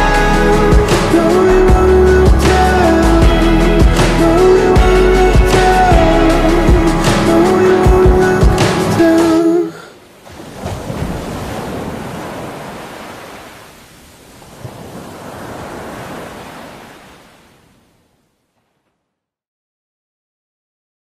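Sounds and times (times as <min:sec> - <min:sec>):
music: 0:00.0 - 0:09.7
ocean surf washing in: 0:05.4 - 0:18.2.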